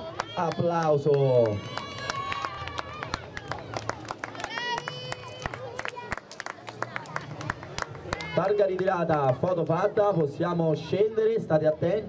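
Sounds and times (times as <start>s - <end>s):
crowd clapping: 0.0s - 9.8s.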